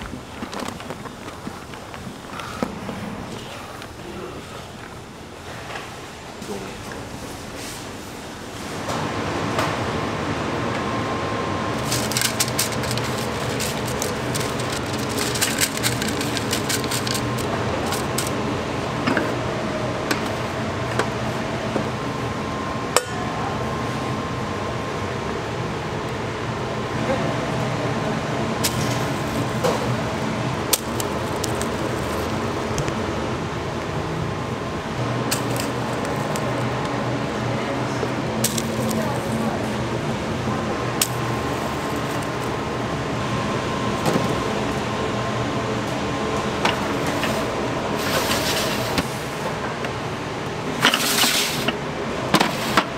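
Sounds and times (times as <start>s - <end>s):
machine hum: 0.0s - 52.9s
batter being scraped: 11.8s - 18.3s.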